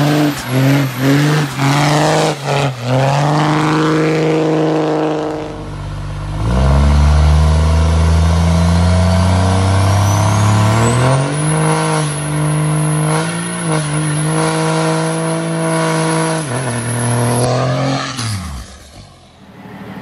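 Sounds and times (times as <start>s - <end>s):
diesel truck engine revving: 0.0s - 20.0s
faint rising whistle: 8.1s - 11.8s.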